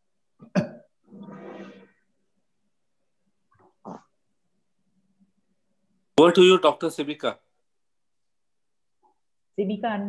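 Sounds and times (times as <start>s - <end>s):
person clearing throat: 0.4s - 1.0s.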